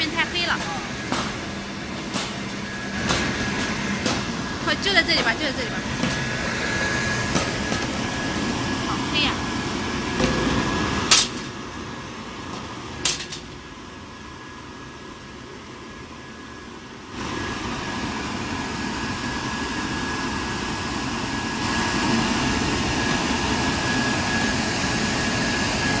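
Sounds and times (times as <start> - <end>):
machine humming: 0.0 - 16.3.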